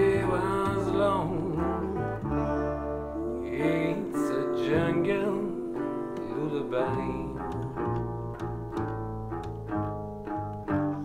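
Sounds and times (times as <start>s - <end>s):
person singing: 0.0s - 9.0s
resonator guitar picking: 0.0s - 11.0s
ukulele bass held notes: 0.0s - 11.0s.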